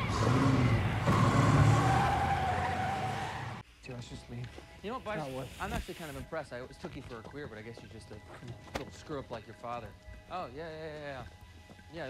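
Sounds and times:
car engine revving: 0.0 - 3.6
tyres squealing: 0.0 - 3.6.

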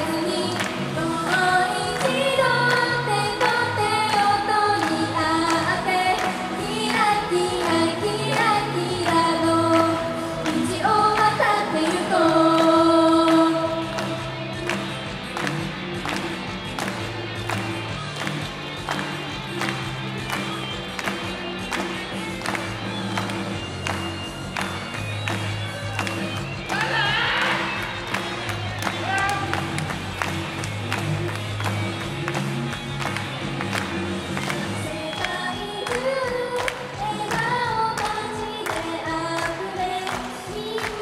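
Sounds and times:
pop backing track over speakers: 0.0 - 41.0.

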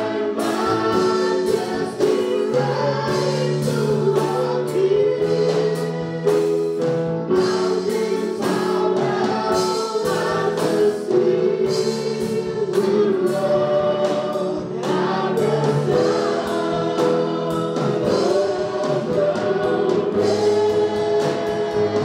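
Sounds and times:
group singing in harmony: 0.0 - 22.0
live drum kit and band: 0.0 - 22.0.

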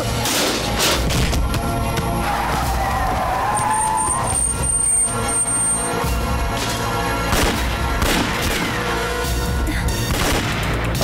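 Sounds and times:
dramatic background music: 0.0 - 11.0
car tyres squealing: 2.9 - 6.0.

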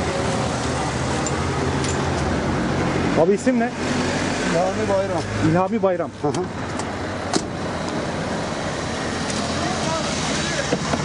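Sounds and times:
roadside traffic noise: 0.0 - 11.0.

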